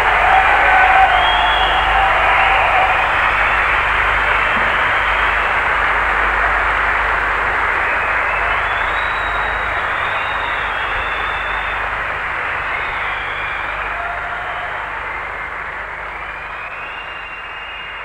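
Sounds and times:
low hum: 0:00.0 - 0:17.8
audience applauding: 0:00.0 - 0:18.0.

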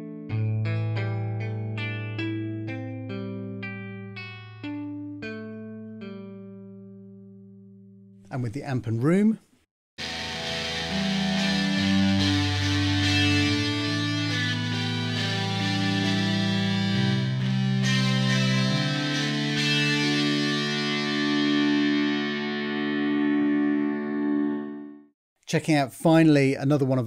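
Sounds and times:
electric guitar sustained notes: 0:00.0 - 0:06.9, 0:10.0 - 0:25.1.

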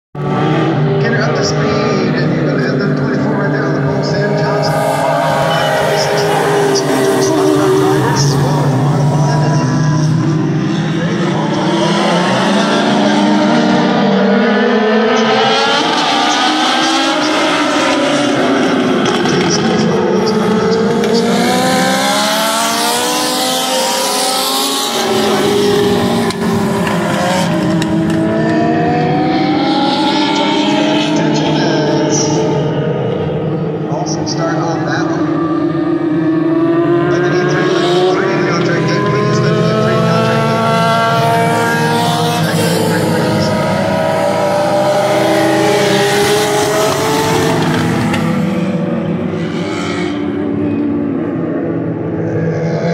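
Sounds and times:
race car engines revving: 0:00.2 - 0:52.9.

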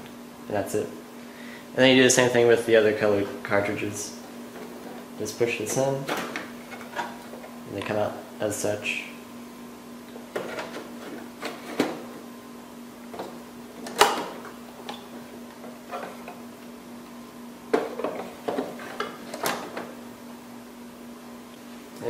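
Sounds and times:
faint hum: 0:00.0 - 0:22.0.

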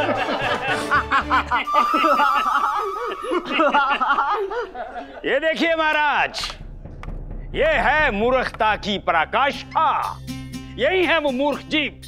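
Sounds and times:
men laughing: 0:00.0 - 0:05.4
high steady note: 0:01.7 - 0:04.0.

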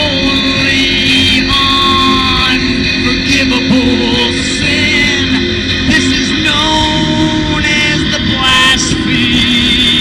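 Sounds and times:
electric guitar strumming: 0:00.0 - 0:10.0
man singing: 0:00.0 - 0:10.0.

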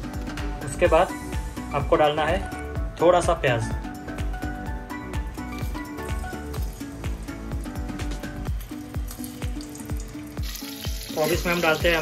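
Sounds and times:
background music with steady beat: 0:00.0 - 0:12.0
onions sizzling in hot oil: 0:05.6 - 0:12.0.

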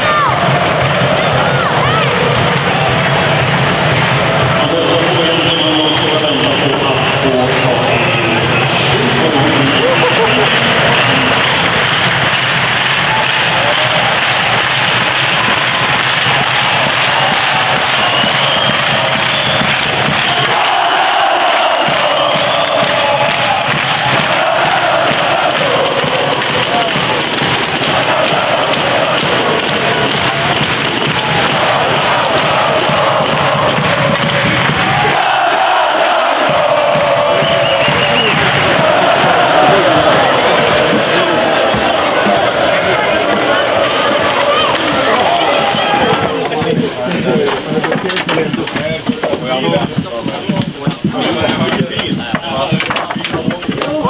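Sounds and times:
music playing: 0:00.0 - 0:47.8
crowd cheering and chanting: 0:00.0 - 0:54.0.

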